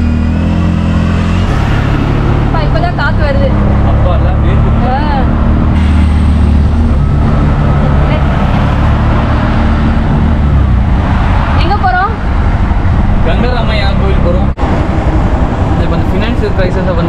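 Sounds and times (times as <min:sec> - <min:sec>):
road and traffic noise: 0:00.0 - 0:17.0.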